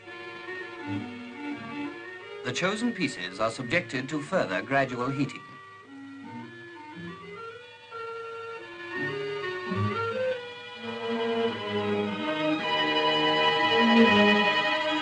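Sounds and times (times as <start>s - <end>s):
orchestral string music: 0.0s - 15.0s.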